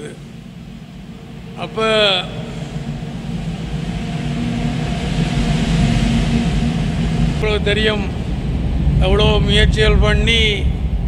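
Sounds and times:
engine rumble: 0.0s - 11.0s
man speaking: 1.6s - 2.6s, 7.4s - 8.2s, 9.0s - 10.7s.

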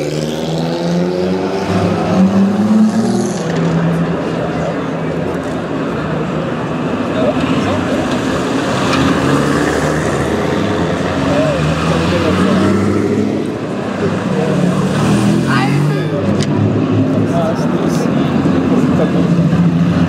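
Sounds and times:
car engines driving past: 0.0s - 20.0s
spectators' voices: 0.0s - 20.0s.

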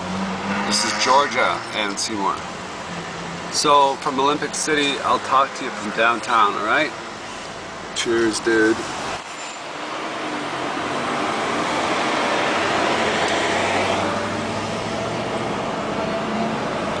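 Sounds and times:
city road traffic: 0.0s - 17.0s.

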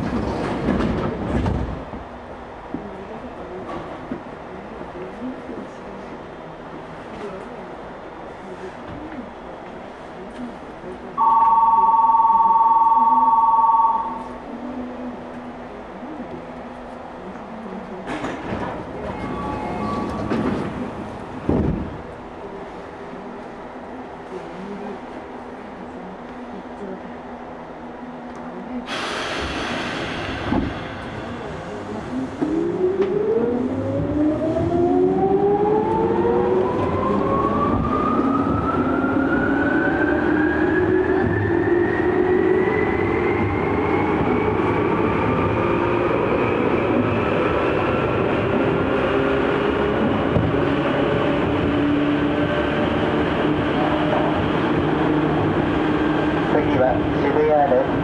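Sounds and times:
wheels rumbling on rails: 0.0s - 11.9s, 14.0s - 58.0s
sudden rush of noise: 28.9s - 34.6s.

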